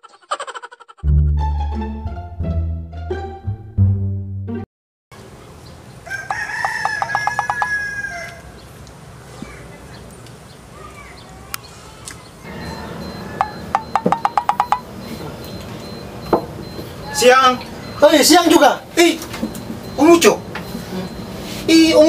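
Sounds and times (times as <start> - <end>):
outdoor background noise: 5.1 - 22.0
rooster crowing: 6.0 - 8.6, 12.5 - 14.1.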